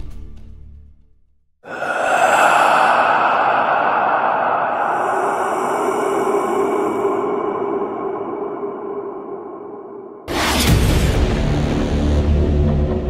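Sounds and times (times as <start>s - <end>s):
rushing noise: 1.6s - 11.8s.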